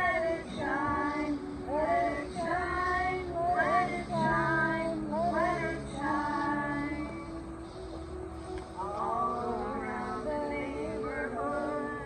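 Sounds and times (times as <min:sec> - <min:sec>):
low sustained note: 0:00.0 - 0:12.0
high clear voice singing: 0:08.8 - 0:12.0.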